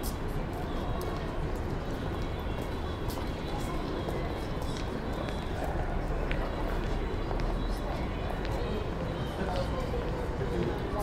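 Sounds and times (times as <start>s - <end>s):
indistinct street voices: 0.0s - 11.0s
low rumble of city noise: 0.0s - 11.0s.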